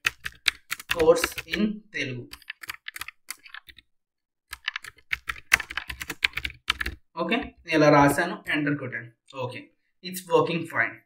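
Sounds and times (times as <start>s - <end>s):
typing on computer keyboard: 0.0s - 1.6s, 2.3s - 3.8s, 4.5s - 7.0s.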